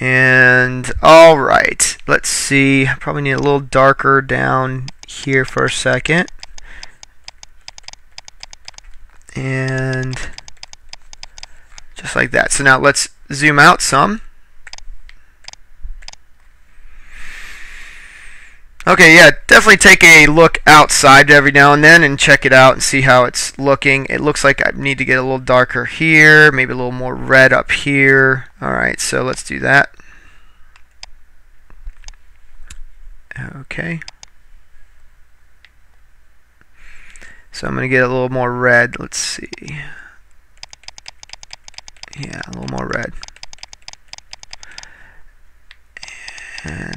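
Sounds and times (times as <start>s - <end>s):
computer mouse clicking: 4.9s - 5.1s, 6.3s - 12.0s, 14.7s - 16.2s, 34.0s - 34.4s, 40.6s - 44.9s, 45.7s - 46.9s.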